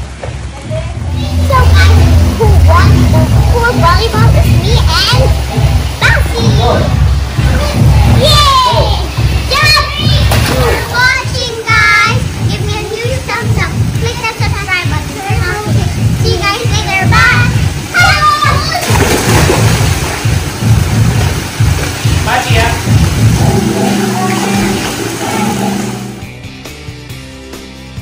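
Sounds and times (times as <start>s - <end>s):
pool water splashing: 0.0s - 26.4s
loud low rumble: 0.6s - 9.5s, 22.1s - 26.4s.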